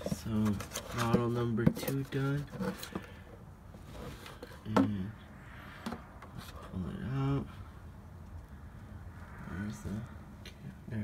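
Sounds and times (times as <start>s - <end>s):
hand pump being handled: 0.0s - 3.2s.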